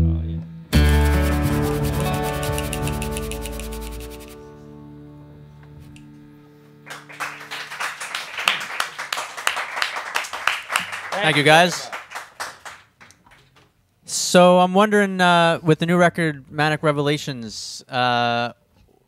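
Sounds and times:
small group applauding: 0:06.8 - 0:13.8.

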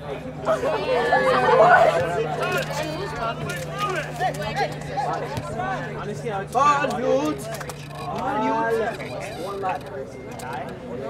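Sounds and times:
people chattering: 0:00.0 - 0:11.0
steady low hum: 0:00.0 - 0:11.0.

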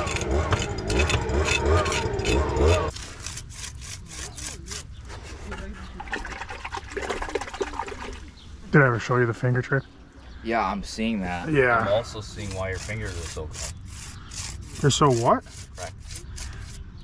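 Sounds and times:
trowel scraping concrete: 0:00.0 - 0:05.7, 0:11.9 - 0:16.8.

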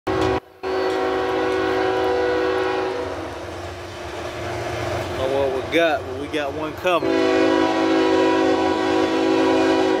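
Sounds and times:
locomotive air horn blasts: 0:00.1 - 0:03.3, 0:07.0 - 0:10.0.

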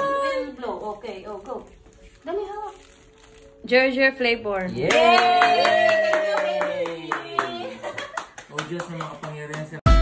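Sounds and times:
hands clapping: 0:04.8 - 0:10.0.

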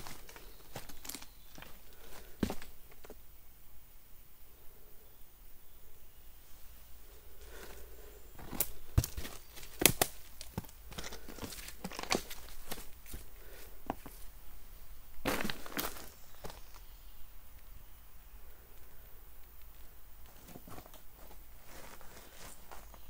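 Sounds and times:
footsteps crunching on gravel: 0:00.0 - 0:02.7, 0:08.4 - 0:14.3, 0:15.2 - 0:16.8, 0:20.3 - 0:23.0.

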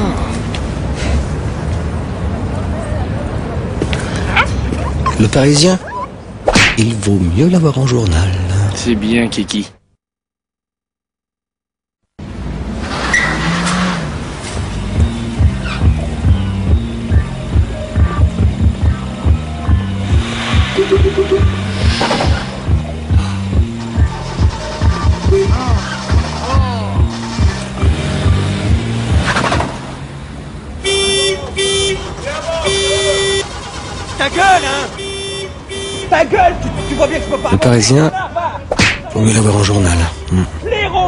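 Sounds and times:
car engines running: 0:12.2 - 0:38.6
low bass music beat: 0:14.7 - 0:29.8
car horn honking: 0:19.7 - 0:22.4, 0:30.8 - 0:38.1.

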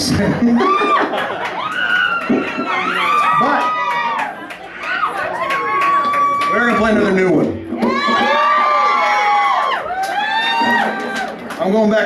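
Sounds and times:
audience cheering and screaming: 0:00.4 - 0:11.6.

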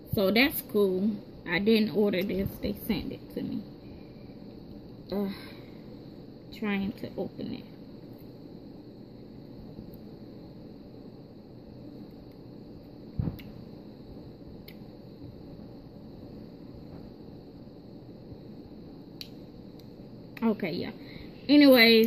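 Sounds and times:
steady low hiss: 0:00.0 - 0:22.0.

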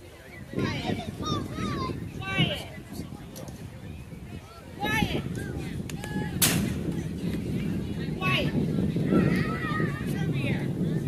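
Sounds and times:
baseball bat crack: 0:06.4 - 0:06.9
children calling: 0:09.0 - 0:10.4.

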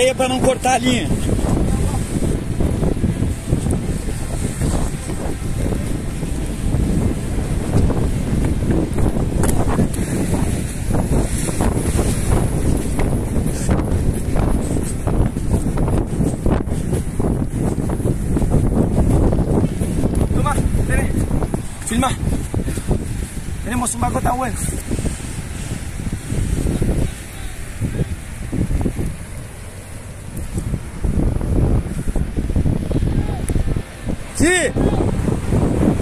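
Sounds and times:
strong wind buffeting microphone: 0:00.0 - 0:36.0.

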